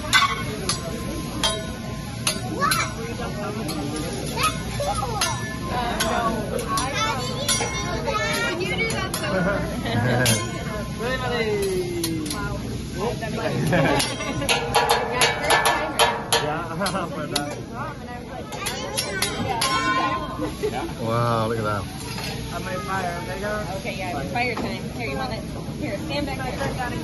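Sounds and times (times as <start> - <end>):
metal spatula and fork clacking: 0.0 - 9.4, 10.2 - 10.8, 11.6 - 12.6, 13.7 - 17.7, 18.5 - 20.6, 22.0 - 22.5
table chatter: 0.0 - 27.0
people laughing: 9.2 - 10.6, 13.2 - 14.7, 16.6 - 17.5, 20.3 - 21.2.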